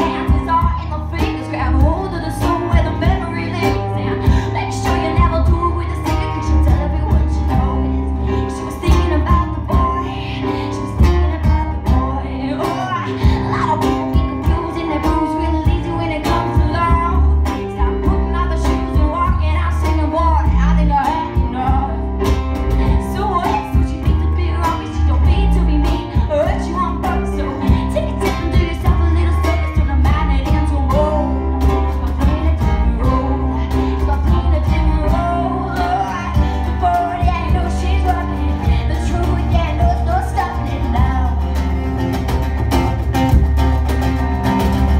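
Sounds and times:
bass guitar: 0.0s - 44.9s
electric guitar: 0.0s - 44.9s
live rock band playing: 0.0s - 44.9s
woman singing: 0.0s - 44.9s
steady drum beat: 40.9s - 44.9s.

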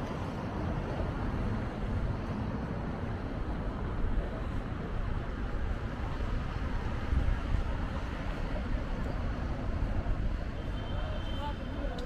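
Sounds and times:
city traffic: 0.0s - 12.0s.

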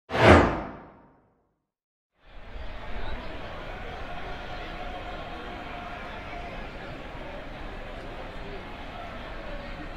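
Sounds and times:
whoosh with low thud: 0.1s - 1.1s.

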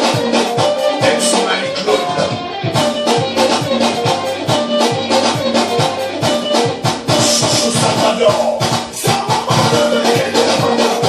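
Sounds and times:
music with driving beat: 0.0s - 11.0s.

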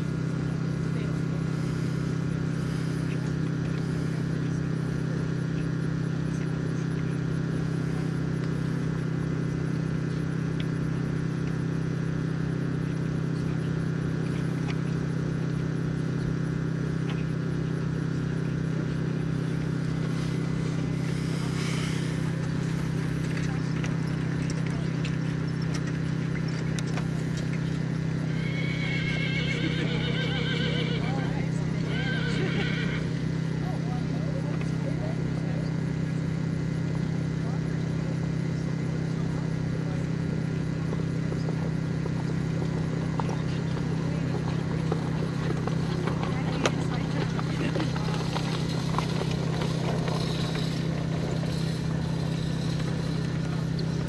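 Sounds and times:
loud steady low hum: 0.0s - 54.0s
horse whinnying: 28.3s - 33.2s.

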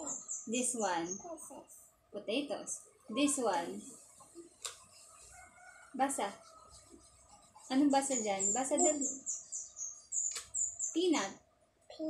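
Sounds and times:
small bird chirping: 0.0s - 1.8s, 2.8s - 12.0s.

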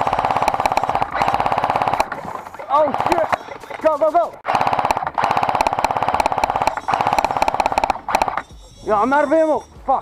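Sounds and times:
airsoft rifle rapid shots: 0.0s - 3.8s, 4.4s - 8.5s.

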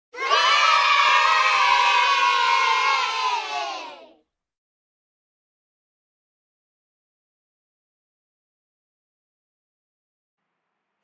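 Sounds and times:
children cheering and shouting: 0.1s - 4.2s.

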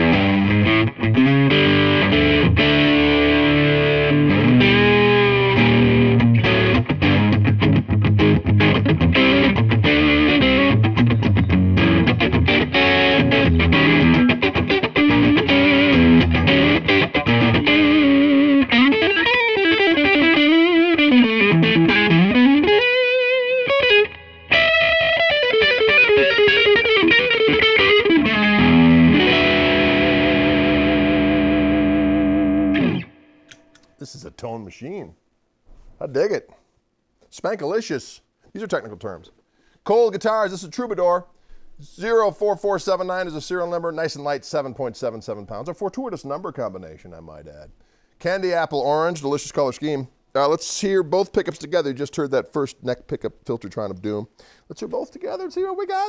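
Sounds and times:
overdriven electric guitar: 0.0s - 33.9s.

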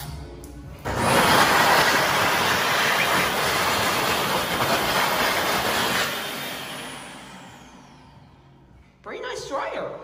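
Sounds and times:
hand dryer air rush: 0.9s - 8.4s.

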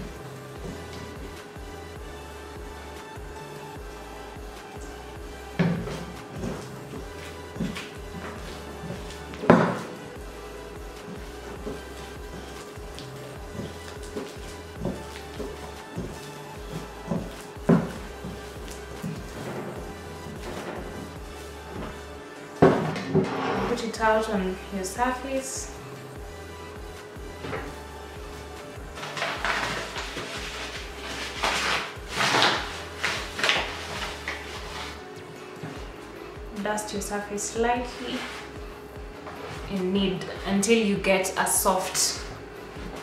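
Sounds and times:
background music: 0.0s - 43.0s.

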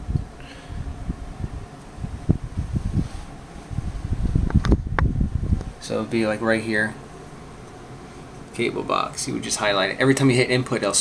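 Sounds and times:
microphone handling noise: 0.0s - 5.8s
faint room hum: 0.0s - 11.0s.

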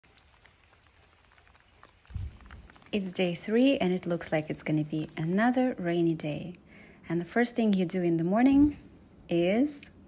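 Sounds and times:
raindrops ticking: 0.0s - 6.0s
soft rain hiss: 0.0s - 10.0s.

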